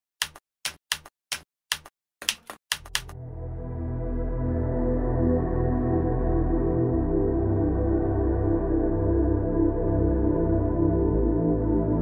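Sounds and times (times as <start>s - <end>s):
keystrokes clicking: 0.2s - 3.2s
soft ambient music pad: 3.2s - 12.0s.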